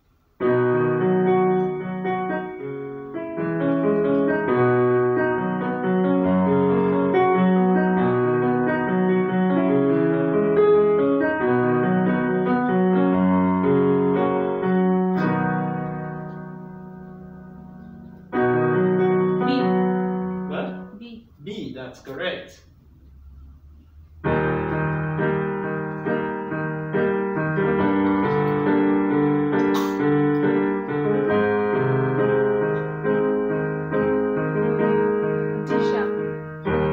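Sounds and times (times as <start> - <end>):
electronic keyboard piano chords: 0.0 - 36.9.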